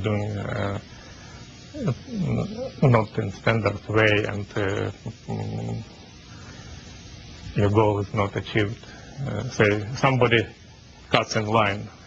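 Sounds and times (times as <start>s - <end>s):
man's hesitation noises: 0.0s - 6.3s, 7.3s - 12.0s.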